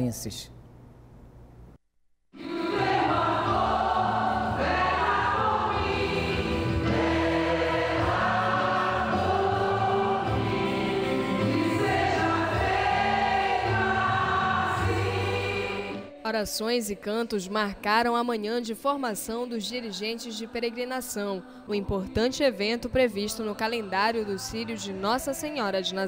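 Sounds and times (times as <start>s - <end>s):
choir singing a hymn: 2.4s - 16.2s, 19.5s - 25.9s.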